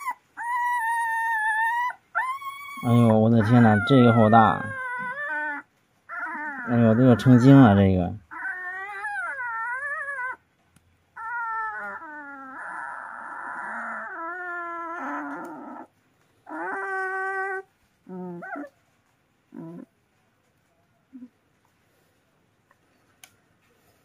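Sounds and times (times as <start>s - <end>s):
puppy whining and howling: 0.0s - 10.5s, 11.1s - 18.8s, 19.5s - 20.0s.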